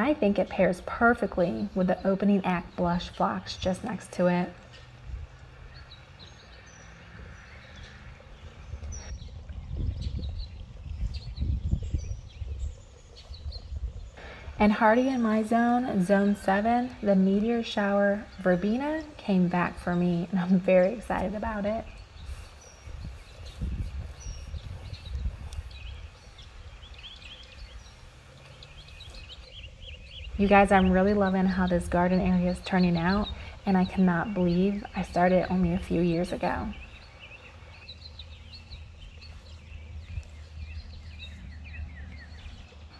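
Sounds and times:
birds chirping: 0.0s - 42.9s.

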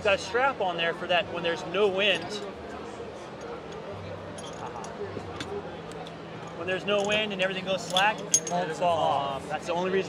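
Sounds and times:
chain links clinking: 4.3s - 5.0s, 7.0s - 8.8s.

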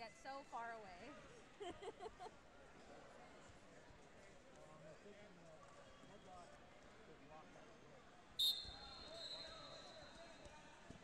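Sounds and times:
referee's whistle: 8.4s - 10.4s.

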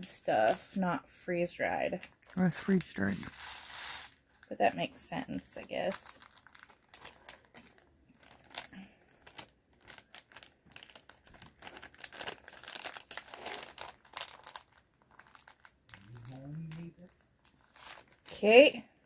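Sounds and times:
plastic bag crinkling: 5.4s - 18.7s.

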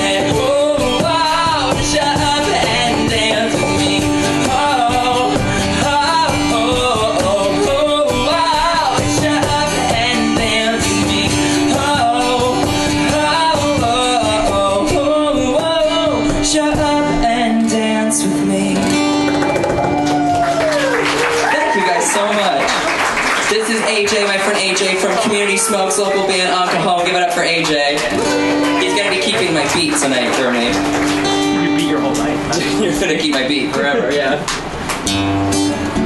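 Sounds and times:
man singing: 0.0s - 19.2s, 23.6s - 30.8s
strummed acoustic guitar: 0.0s - 20.5s, 22.1s - 36.0s.

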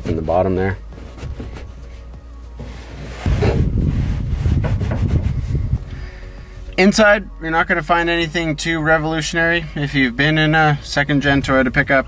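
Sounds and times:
rubbing and scraping handling noise: 0.0s - 6.6s.

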